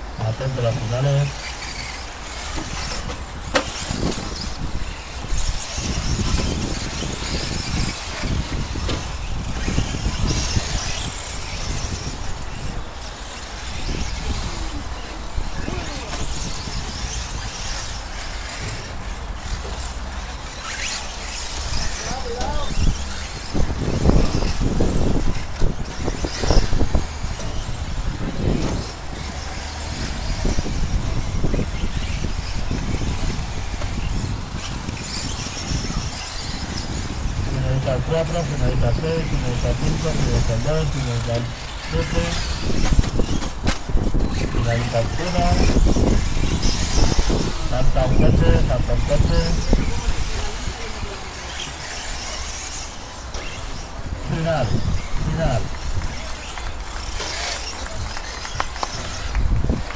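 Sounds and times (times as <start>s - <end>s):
radio-controlled trucks racing: 0.0s - 59.9s
people talking: 0.2s - 1.4s, 15.6s - 16.3s, 22.0s - 22.8s, 37.5s - 42.6s, 44.5s - 45.9s, 47.5s - 51.8s, 54.2s - 56.3s.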